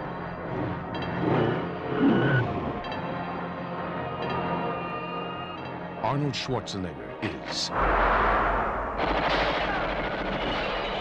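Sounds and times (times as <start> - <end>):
low rumble: 7.7 - 10.7.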